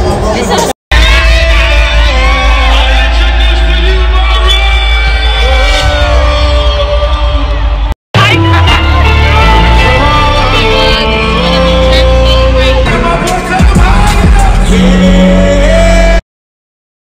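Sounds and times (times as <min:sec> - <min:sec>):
live concert music with heavy bass: 0:00.0 - 0:16.2
crowd singing: 0:00.2 - 0:16.2.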